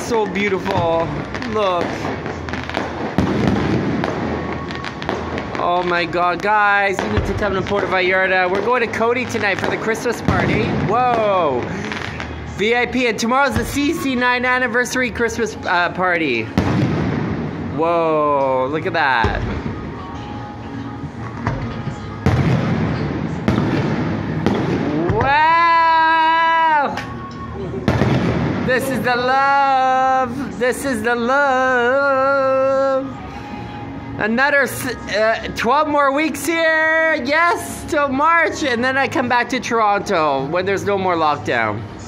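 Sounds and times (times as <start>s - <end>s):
continuous noisy background: 0.0s - 42.0s
fireworks rumble and crackle: 0.0s - 42.0s
fireworks bang: 0.6s - 12.4s, 16.6s - 17.9s, 21.4s - 25.5s, 27.9s - 29.1s.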